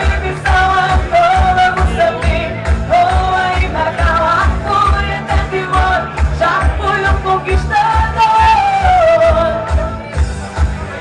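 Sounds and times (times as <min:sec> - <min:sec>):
woman singing into a microphone: 0:00.0 - 0:10.2
pop backing track: 0:00.0 - 0:11.0
steady bass beat: 0:00.0 - 0:11.0.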